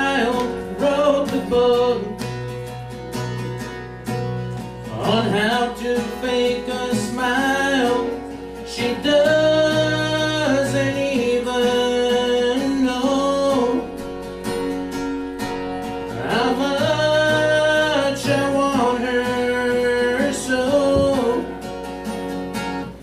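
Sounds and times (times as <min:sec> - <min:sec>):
man singing: 0:00.0 - 0:02.5, 0:04.8 - 0:14.1, 0:16.0 - 0:21.6
strummed acoustic guitar: 0:00.0 - 0:23.0.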